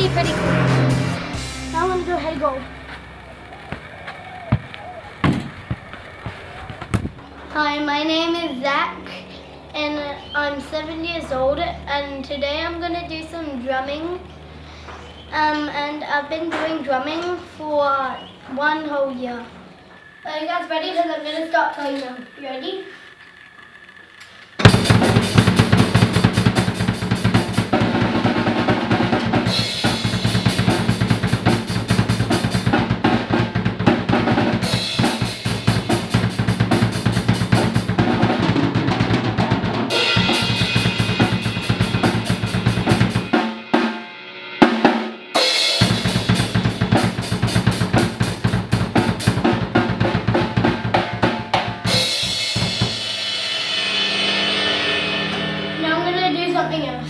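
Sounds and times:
acoustic drum kit playing: 0:00.0 - 0:07.7, 0:24.6 - 0:57.0.

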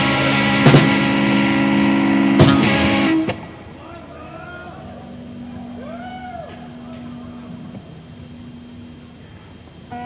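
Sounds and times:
amplifier electrical hum: 0:00.0 - 0:10.0
rising and falling wail: 0:03.8 - 0:08.3.

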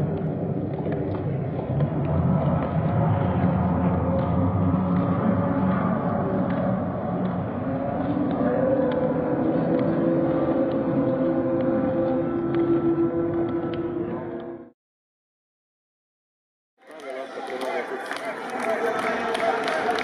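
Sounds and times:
stadium low rumble: 0:00.0 - 0:14.7.

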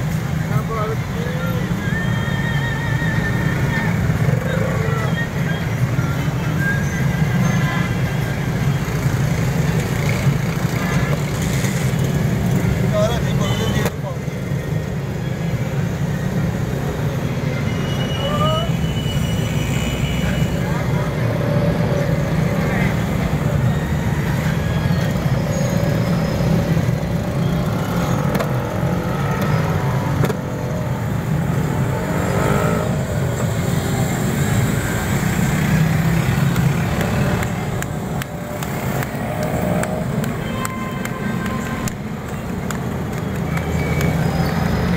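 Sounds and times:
indistinct voices: 0:00.0 - 0:08.8
passing traffic rumble: 0:00.0 - 0:44.9.

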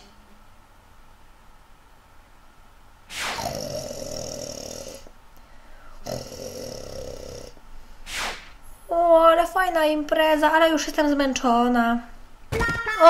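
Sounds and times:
person snoring: 0:03.1 - 0:05.1, 0:05.8 - 0:07.6.

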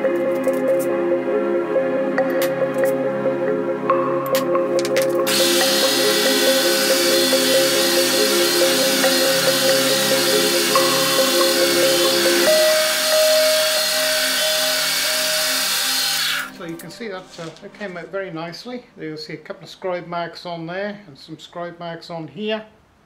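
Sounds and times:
background music with chords: 0:00.0 - 0:17.2
power drill boring metal: 0:05.2 - 0:16.6.

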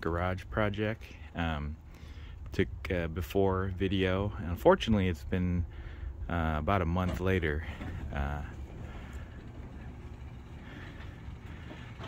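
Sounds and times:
door rolling along tracks: 0:07.0 - 0:12.0
garage door opener motor hum: 0:07.2 - 0:12.0.

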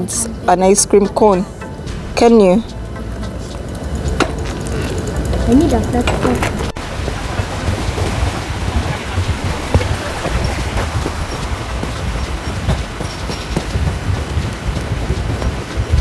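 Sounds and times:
wind on microphone: 0:01.9 - 0:16.0
bicycle rumbling on dirt path: 0:03.4 - 0:16.0
bike knocks and rattles: 0:03.5 - 0:16.0.

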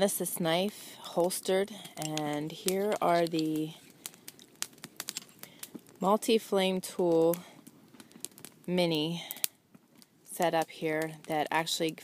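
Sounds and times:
campfire crackling: 0:00.0 - 0:12.0.

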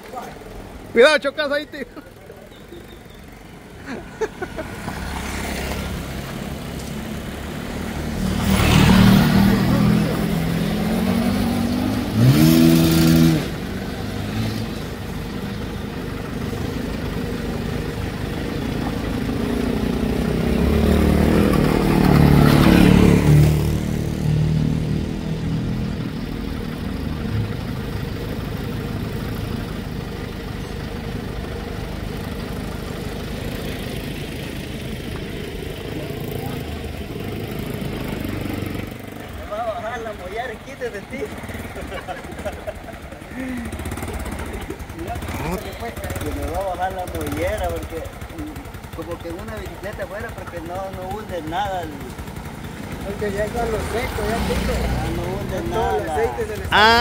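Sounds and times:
motorcycle engine accelerating: 0:04.5 - 0:39.6, 0:40.7 - 0:57.0.

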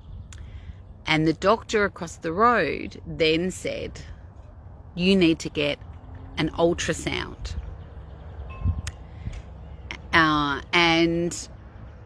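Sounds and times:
wind rumble on microphone: 0:00.0 - 0:01.1, 0:05.8 - 0:09.9.

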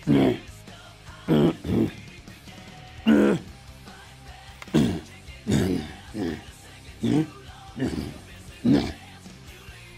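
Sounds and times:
faint background music: 0:00.0 - 0:09.9
man's wordless vocal sounds: 0:00.0 - 0:09.9.

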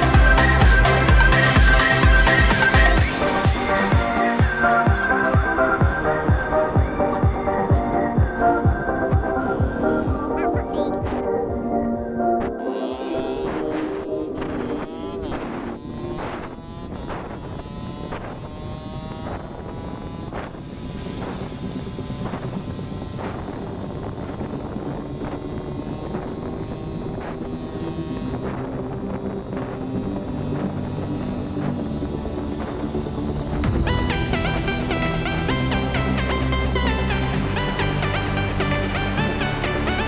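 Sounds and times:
motorcycle engine running: 0:00.0 - 0:40.0
wind noise on microphone: 0:00.0 - 0:40.0.

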